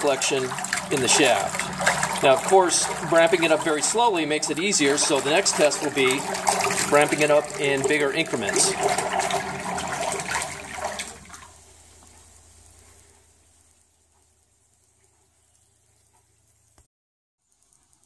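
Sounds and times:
propeller churning water: 0.0s - 12.1s.

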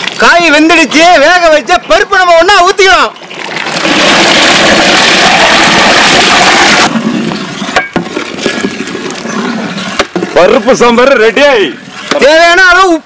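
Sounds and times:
pot bubbling: 3.1s - 10.9s.

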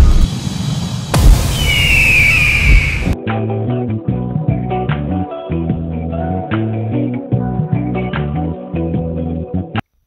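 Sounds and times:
rumbling noise: 0.0s - 3.2s
high whistling tone: 1.2s - 3.2s
plucked bass and guitar music: 3.2s - 9.8s.

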